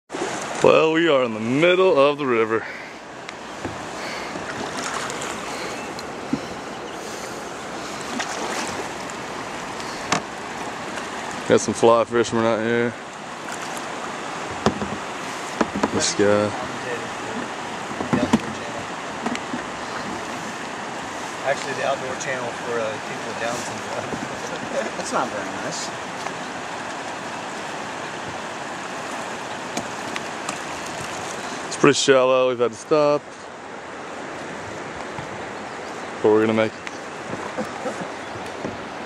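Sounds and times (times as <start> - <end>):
shallow river water flowing: 0.1 - 39.0.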